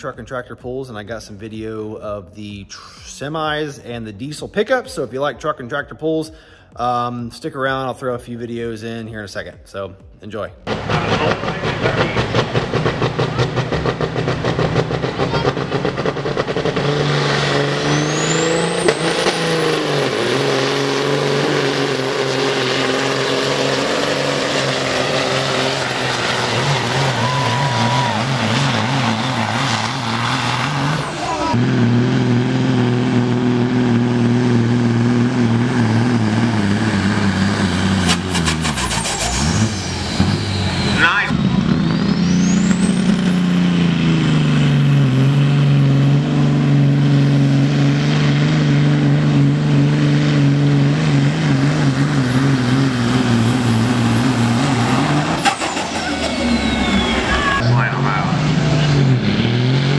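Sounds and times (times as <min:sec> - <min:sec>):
diesel truck engine at full throttle: 0:00.0 - 0:09.6, 0:10.4 - 0:59.9
turbo whistle: 0:26.6 - 0:31.5, 0:36.9 - 0:43.5, 0:55.4 - 0:57.9.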